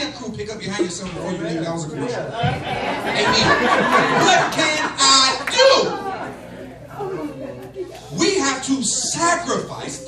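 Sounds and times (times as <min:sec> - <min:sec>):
murmur of people in a hall: 0:00.0 - 0:10.0.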